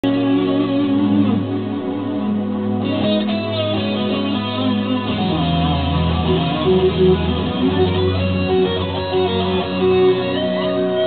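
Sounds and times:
electric guitar solo: 0:00.0 - 0:11.0.

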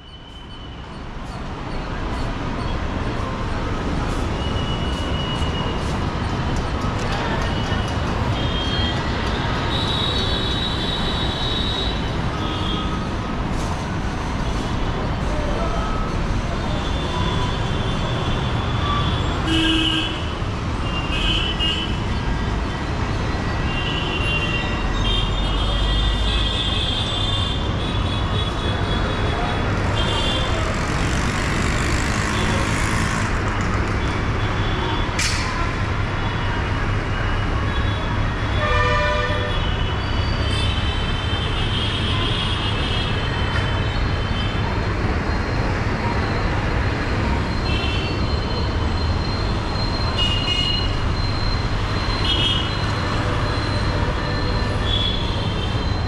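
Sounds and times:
city traffic engines and tyres: 0:00.0 - 0:56.0.

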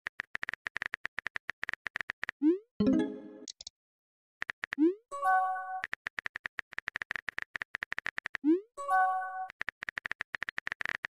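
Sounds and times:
keyboard typing clicks: 0:02.8 - 0:03.7.

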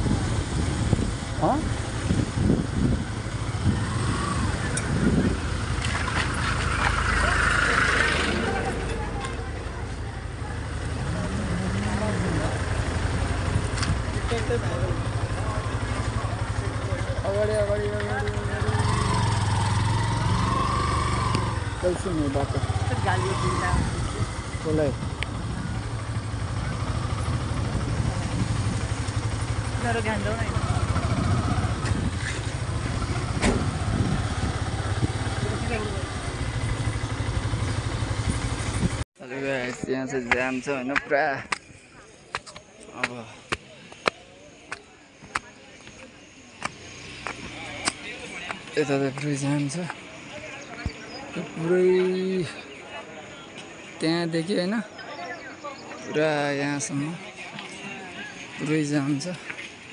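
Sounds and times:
vehicle engines humming: 0:00.0 - 0:59.9
people talking: 0:07.0 - 0:19.5, 0:21.2 - 0:25.0, 0:29.7 - 0:31.0, 0:35.3 - 0:36.3, 0:39.2 - 0:46.8, 0:47.4 - 0:59.5.

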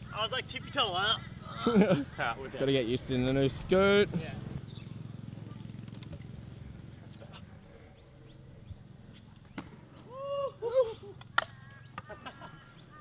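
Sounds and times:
rising and falling cries: 0:09.9 - 0:13.0.

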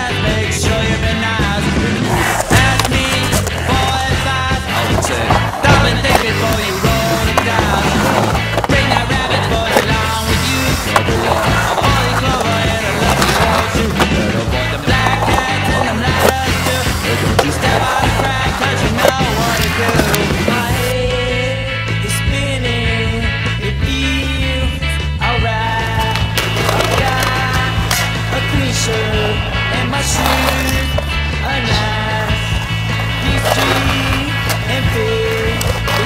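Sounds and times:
loud rock music: 0:00.0 - 0:36.0
skateboard wheels rolling on concrete: 0:00.0 - 0:36.0
skateboard knocks: 0:02.1 - 0:20.9.

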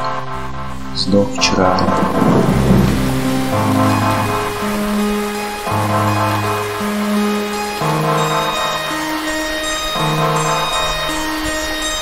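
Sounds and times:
thunder rumble: 0:00.0 - 0:08.5
low synthesizer music: 0:00.0 - 0:12.0
steady rain: 0:00.0 - 0:12.0.

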